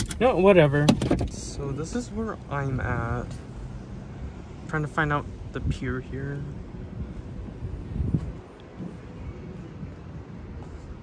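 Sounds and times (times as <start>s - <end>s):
wind rumble on microphone: 5.2s - 11.0s.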